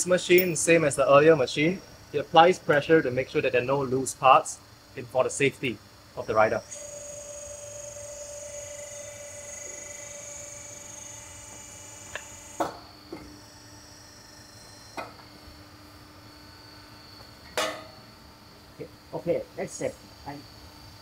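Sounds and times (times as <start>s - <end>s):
machinery hum with high whine: 0.0s - 21.0s.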